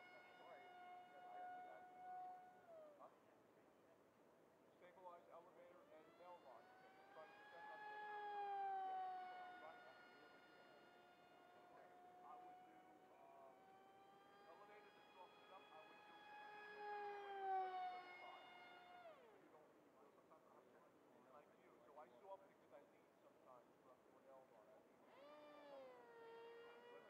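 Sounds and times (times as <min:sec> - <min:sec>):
model plane propeller whining: 0:00.0 - 0:03.1, 0:05.6 - 0:19.5, 0:25.0 - 0:27.0.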